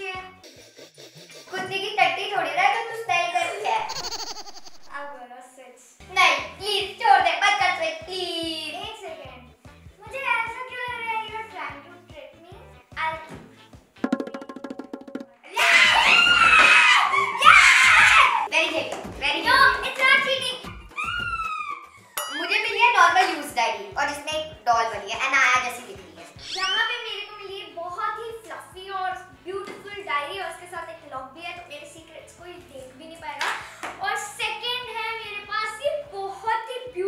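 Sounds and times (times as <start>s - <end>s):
background music with steady beat: 0.0s - 5.2s, 6.0s - 16.6s, 18.1s - 37.0s
girl screaming excitedly: 3.7s - 5.2s, 15.5s - 18.5s, 20.7s - 22.6s, 26.4s - 27.5s.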